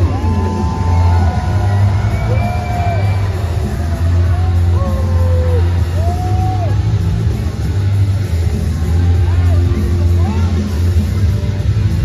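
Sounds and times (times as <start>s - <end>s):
crowd shouting: 0.0s - 6.9s
loud music with heavy bass: 0.0s - 12.0s.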